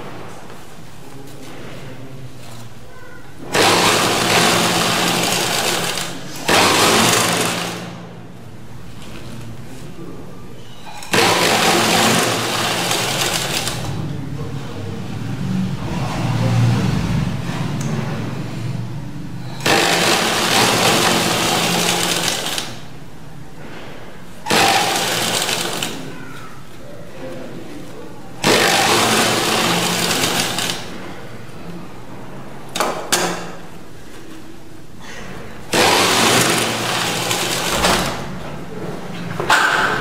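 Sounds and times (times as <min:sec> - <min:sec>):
electric sewing machine stitching: 0:03.5 - 0:08.0, 0:11.0 - 0:14.0, 0:19.4 - 0:22.8, 0:24.4 - 0:26.1, 0:28.4 - 0:31.0, 0:35.7 - 0:38.2.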